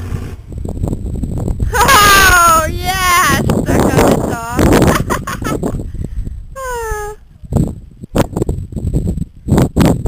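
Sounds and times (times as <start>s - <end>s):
low rumble: 0.0s - 10.0s
person calling out: 1.7s - 4.6s, 6.6s - 7.2s.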